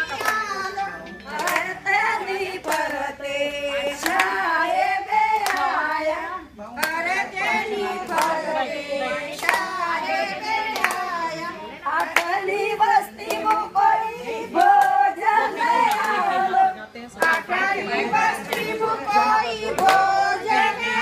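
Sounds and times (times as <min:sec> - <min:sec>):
sharp hand claps: 0:00.0 - 0:00.6, 0:01.3 - 0:01.8, 0:02.6 - 0:03.0, 0:04.0 - 0:04.4, 0:05.3 - 0:05.8, 0:06.8 - 0:07.0, 0:08.0 - 0:08.4, 0:09.4 - 0:09.8, 0:10.6 - 0:11.1, 0:12.0 - 0:12.4, 0:13.2 - 0:13.7, 0:15.9 - 0:16.2, 0:17.2 - 0:17.5, 0:18.4 - 0:18.8, 0:19.7 - 0:20.2
women singing together: 0:00.0 - 0:21.0.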